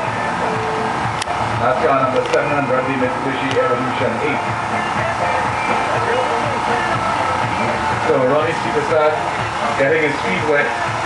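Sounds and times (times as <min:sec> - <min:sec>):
distant car engine: 0:00.0 - 0:11.0
faint voices: 0:01.6 - 0:11.0.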